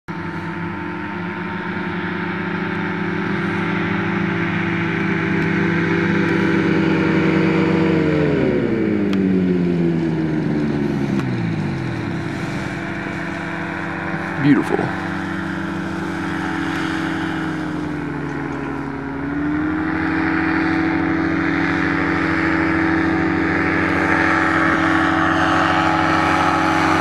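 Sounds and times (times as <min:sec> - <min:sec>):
propeller engine running: 0:00.0 - 0:27.0.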